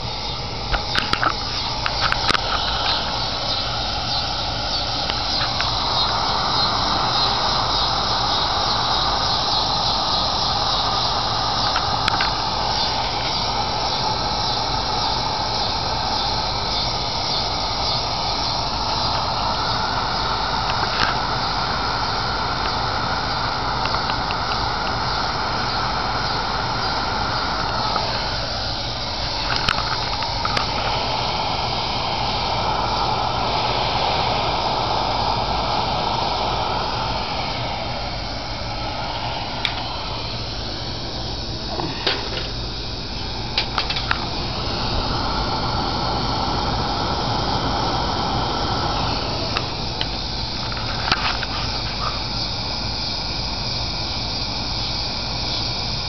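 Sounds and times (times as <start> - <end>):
pressure lantern hissing: 0.0 - 56.0.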